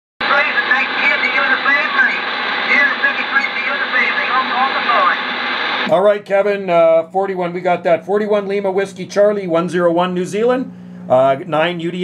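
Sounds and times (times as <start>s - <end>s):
radio static: 0.2s - 6.1s
voice over radio: 0.2s - 6.1s.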